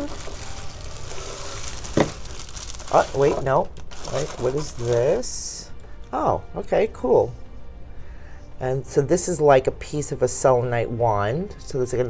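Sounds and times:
paper filler rustling: 0.0s - 5.2s
plastic bag crinkling: 0.0s - 5.4s.

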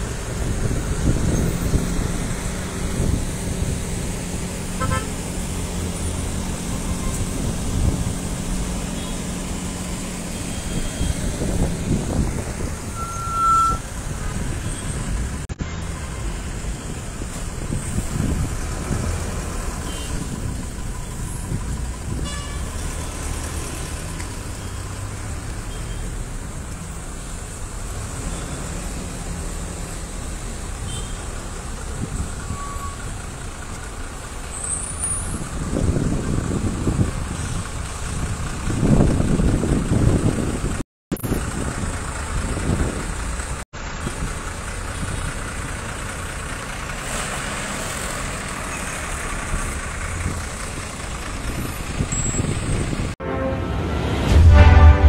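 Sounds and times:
traffic engine rumble: 0.0s - 55.0s.

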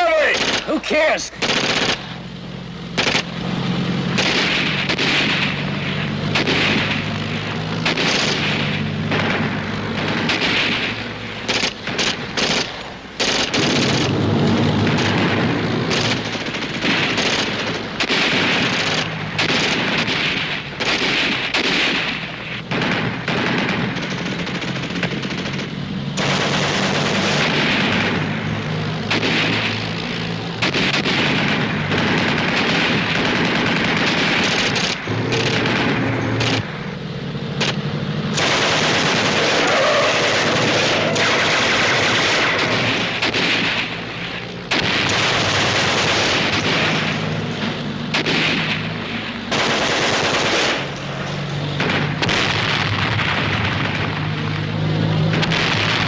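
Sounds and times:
machine-gun fire: 0.0s - 2.3s, 2.9s - 36.8s, 37.5s - 56.0s
rifle shots: 0.0s - 56.0s
booms: 13.3s - 36.7s, 51.6s - 56.0s.

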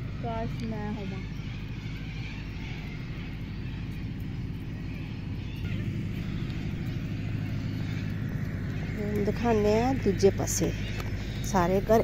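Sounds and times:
distant engine hum: 0.0s - 12.0s.

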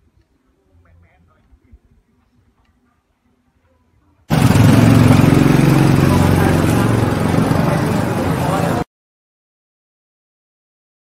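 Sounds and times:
motorcycle engine running: 4.3s - 8.8s
people's voices: 4.3s - 8.9s.

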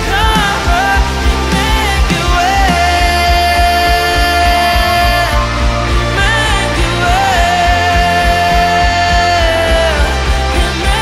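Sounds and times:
electric bass: 0.0s - 11.0s.

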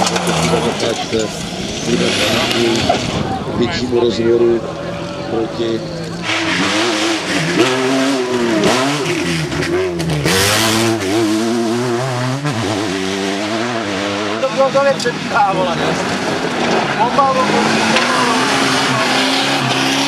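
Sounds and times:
rally car engines revving: 0.0s - 20.0s.

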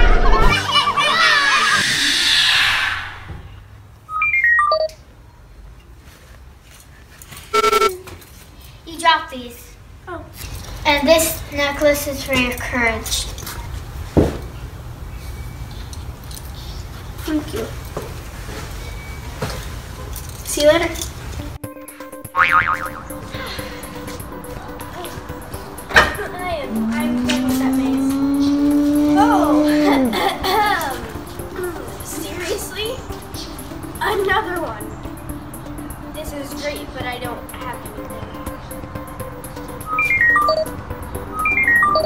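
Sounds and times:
electronic beeps at stepping pitches: 4.1s - 4.9s, 7.5s - 8.0s, 21.7s - 42.0s
short buzzy electronic tone: 7.5s - 7.9s, 22.4s - 24.2s
wobbling high tone effect: 7.6s - 7.9s, 22.2s - 42.0s
music with held notes: 21.3s - 42.0s.

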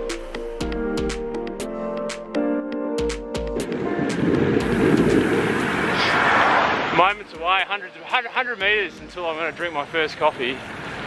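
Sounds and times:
background music with plucked notes: 0.0s - 5.8s, 6.9s - 9.8s
rush of noise rising in pitch: 3.6s - 7.1s.

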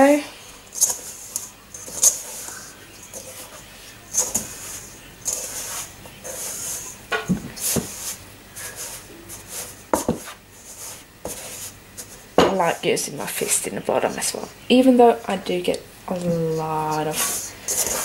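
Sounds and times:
hands rubbing dough in bowl: 0.0s - 18.0s.

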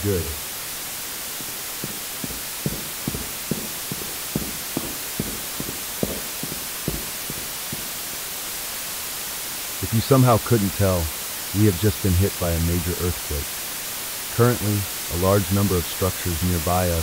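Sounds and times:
radio static hiss: 0.0s - 17.0s.

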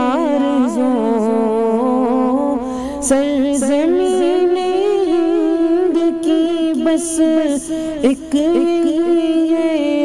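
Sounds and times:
person singing a wavering note: 0.0s - 10.0s.

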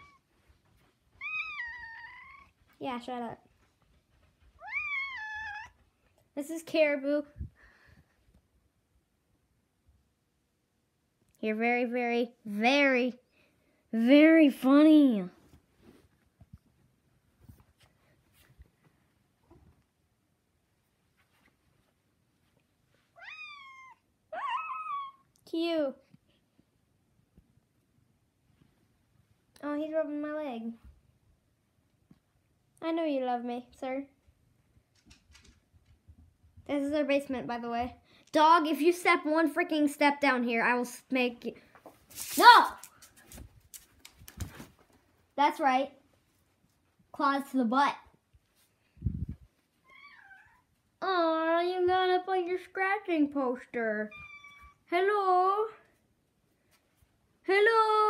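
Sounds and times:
cat meowing: 1.2s - 2.6s, 4.6s - 5.8s, 23.2s - 25.3s, 49.8s - 50.7s, 54.1s - 54.8s.

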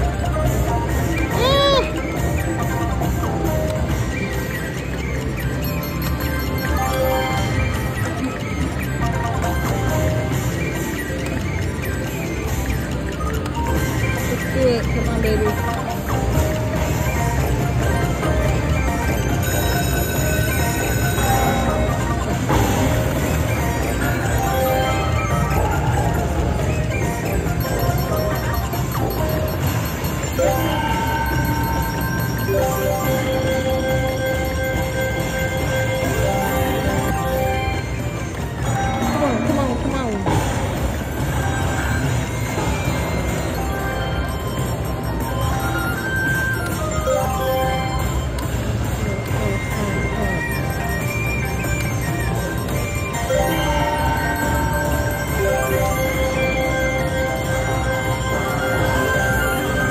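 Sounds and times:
casino chatter: 0.0s - 59.9s
slot machine music and reel sounds: 0.0s - 59.9s.

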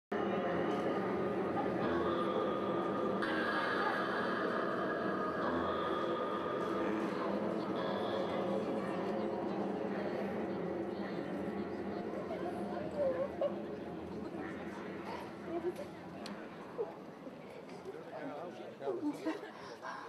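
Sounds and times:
murmur of voices: 0.1s - 20.0s
layered drone of held tones: 0.2s - 16.1s.

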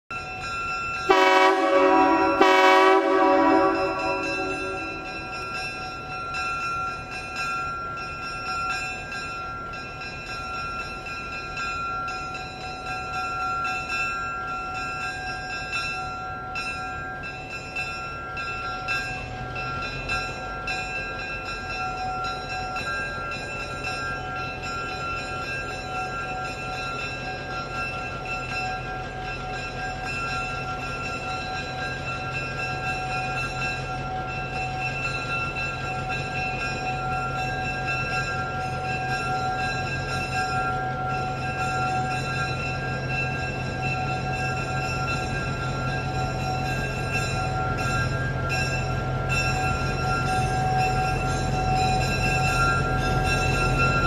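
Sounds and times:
diesel locomotive horn: 1.1s - 5.1s
locomotive engine rumble: 16.4s - 54.0s.

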